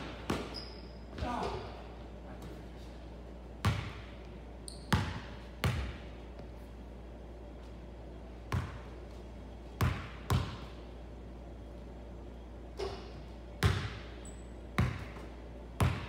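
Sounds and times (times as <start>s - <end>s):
basketball bouncing on hardwood floor: 4.9s - 6.0s, 8.5s - 8.8s, 12.8s - 14.0s, 15.8s - 16.0s.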